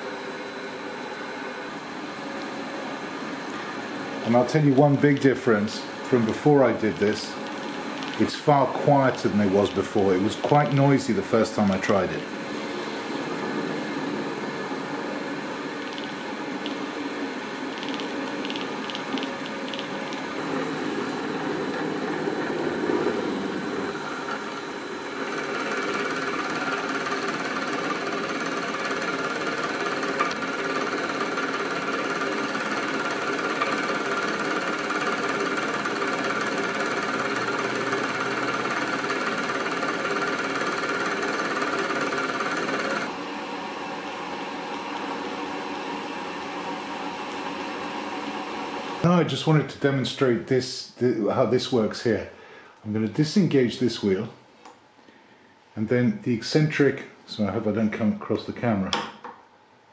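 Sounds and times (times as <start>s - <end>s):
pillar drill motor humming: 0.0s - 49.1s.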